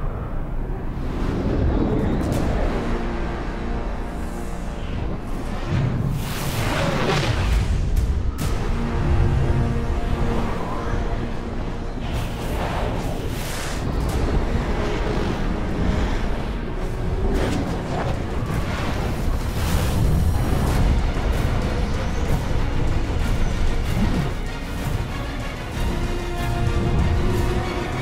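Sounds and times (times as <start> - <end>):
film music score: 0.0 - 28.0
heavy low rush of wind: 0.0 - 28.0
loud whooshes of flyers passing: 9.7 - 24.4.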